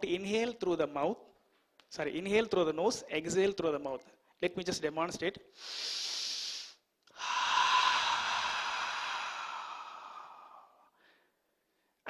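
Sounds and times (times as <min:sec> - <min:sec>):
man inhaling sharply through nose: 0:05.5 - 0:11.4
man exhaling through open mouth: 0:05.6 - 0:11.2.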